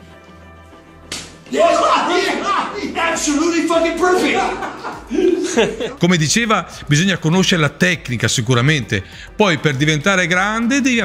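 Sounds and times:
sharp slap: 0:01.0 - 0:01.6
voices crying out: 0:01.5 - 0:06.0.

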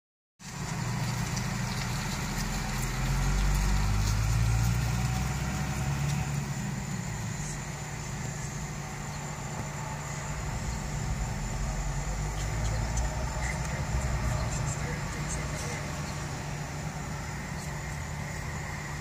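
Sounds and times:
car engine idling: 0:00.4 - 0:19.0.

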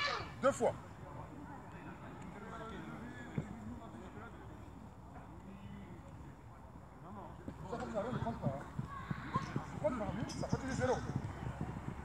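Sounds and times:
distant voices talking: 0:00.0 - 0:12.0.

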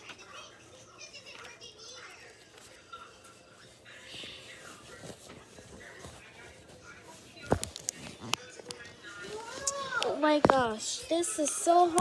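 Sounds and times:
faint child voices: 0:00.0 - 0:04.5, 0:09.2 - 0:12.0.

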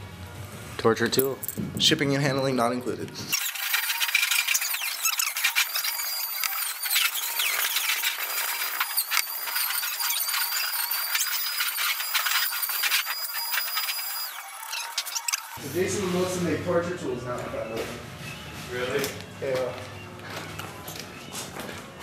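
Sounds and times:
styrofoam being scraped: 0:03.4 - 0:15.2.

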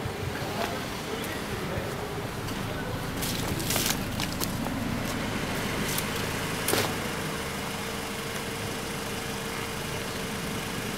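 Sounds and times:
car engine idling: 0:00.0 - 0:10.9.

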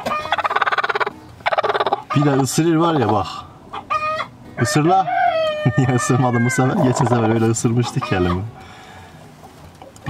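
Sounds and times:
hen growling: 0:04.2 - 0:07.4.

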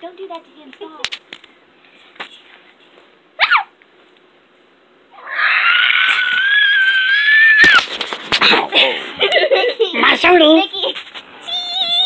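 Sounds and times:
cat squealing and yowling: 0:03.4 - 0:03.7, 0:05.1 - 0:07.8.

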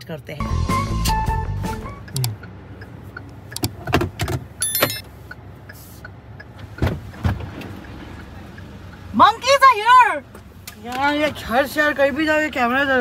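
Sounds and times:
low car cabin rumble: 0:01.2 - 0:13.0
car door opening clicks: 0:02.1 - 0:02.5, 0:03.2 - 0:05.1
high electronic chirp: 0:04.6 - 0:05.0.

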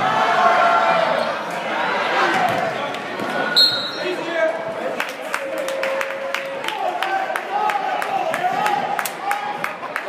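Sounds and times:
spectators' voices: 0:00.0 - 0:10.0
shrill referee whistle: 0:03.6 - 0:04.2.

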